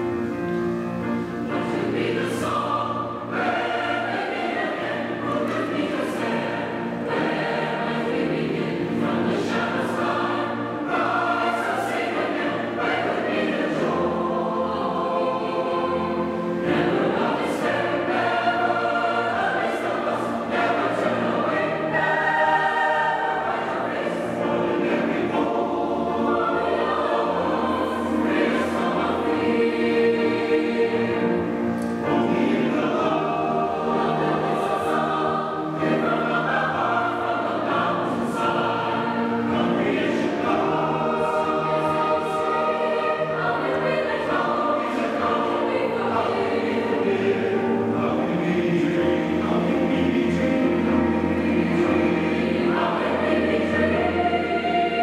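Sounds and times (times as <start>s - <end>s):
mixed choir singing in harmony: 0.0s - 55.0s.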